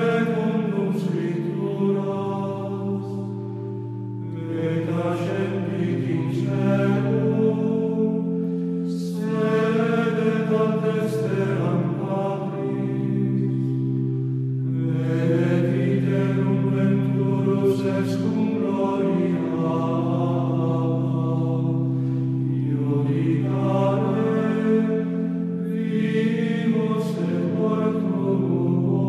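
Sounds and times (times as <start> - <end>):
slow choral chant: 0.0 - 29.0.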